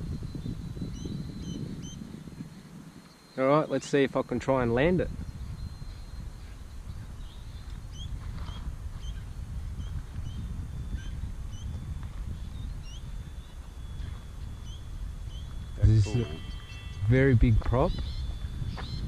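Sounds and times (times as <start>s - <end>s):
wind rumbling on microphone: 0.0s - 19.0s
small bird chirping: 0.3s - 4.0s, 5.2s - 19.0s.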